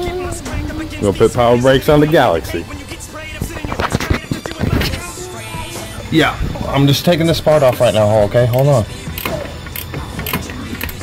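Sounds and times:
hand tool metallic clicks: 0:08.5 - 0:11.0.

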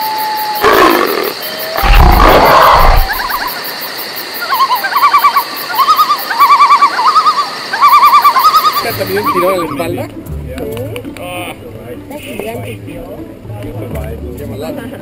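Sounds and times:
lion roaring: 0:00.6 - 0:03.5.

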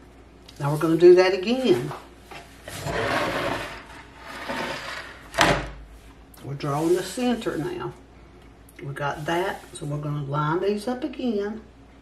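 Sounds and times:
boards scraping on wooden table: 0:02.3 - 0:05.6.

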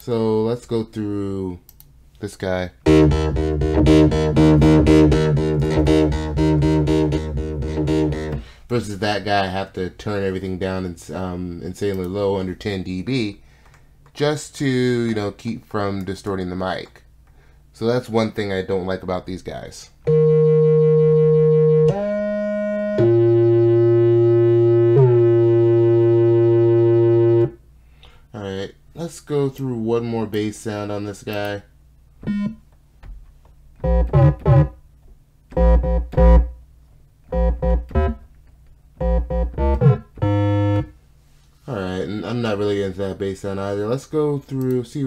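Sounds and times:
deep sustained synth bass: 0:02.8 - 0:08.4, 0:20.1 - 0:27.6, 0:33.8 - 0:34.7, 0:35.6 - 0:36.6, 0:37.3 - 0:38.2, 0:39.0 - 0:40.9
synth bass repeated notes: 0:02.8 - 0:08.5, 0:20.1 - 0:27.6, 0:32.2 - 0:32.6, 0:33.8 - 0:34.8, 0:35.5 - 0:36.6, 0:37.3 - 0:38.3, 0:39.0 - 0:41.0.

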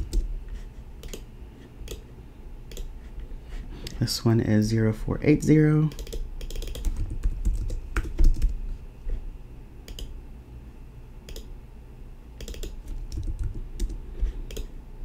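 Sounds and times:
computer keyboard typing: 0:00.0 - 0:00.3, 0:01.0 - 0:02.1, 0:02.7 - 0:02.9, 0:05.9 - 0:08.6, 0:09.9 - 0:10.1, 0:11.3 - 0:11.5, 0:12.4 - 0:14.7.

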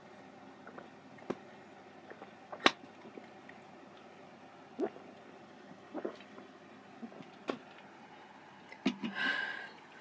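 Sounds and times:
person gulping soda: 0:00.6 - 0:01.4, 0:02.0 - 0:03.6, 0:04.8 - 0:05.1, 0:05.9 - 0:07.7.

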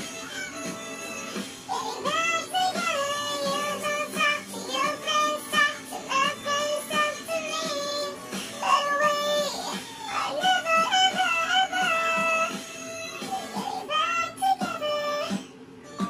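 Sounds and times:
song with high sung melody: 0:00.0 - 0:16.0.

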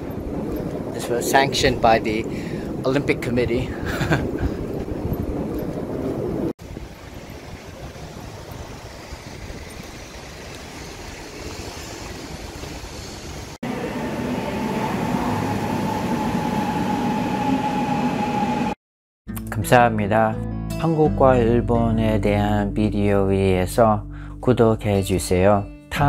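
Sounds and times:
street noise: 0:03.9 - 0:18.8
subway train rumble and whine: 0:05.8 - 0:18.8
station ambience: 0:13.6 - 0:18.8.

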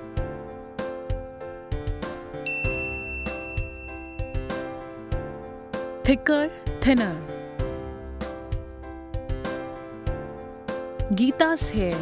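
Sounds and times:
background music with steady beat: 0:00.0 - 0:12.0
bright high ding: 0:02.5 - 0:04.8.

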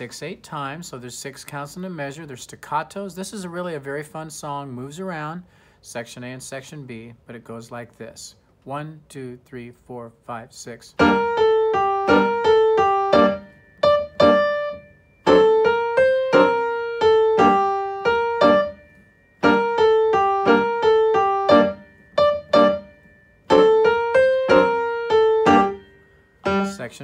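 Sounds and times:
upright piano playing staccato: 0:11.0 - 0:18.8, 0:19.4 - 0:25.8, 0:26.4 - 0:26.8.

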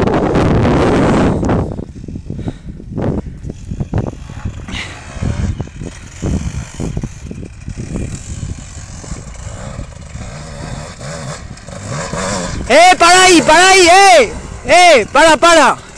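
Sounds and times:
off-road motorcycle engine revving: 0:03.4 - 0:15.9.

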